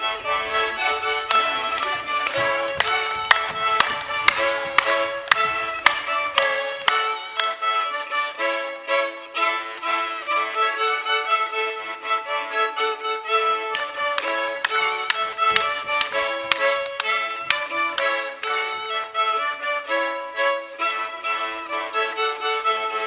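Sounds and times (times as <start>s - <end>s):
accordion: 0.0s - 23.0s
fiddle: 0.0s - 23.0s.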